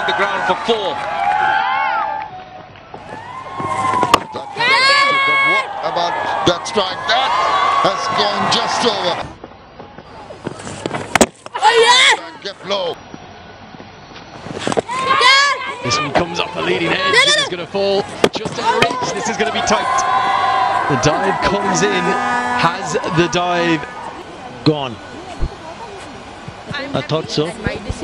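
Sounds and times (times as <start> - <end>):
broadcast background noise: 0.0 - 28.0
ambient murmur: 18.8 - 26.7.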